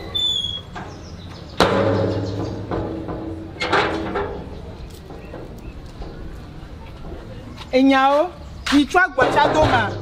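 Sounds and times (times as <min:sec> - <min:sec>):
footsteps on hard ground: 0:00.7 - 0:10.0
faint voices: 0:03.3 - 0:10.0.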